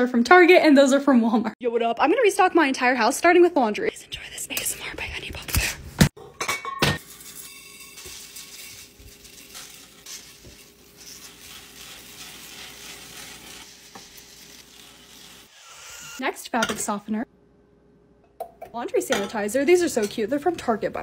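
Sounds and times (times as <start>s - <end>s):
glass jar clinking: 6.2s - 9.0s
small beads pouring into jar: 7.2s - 14.8s.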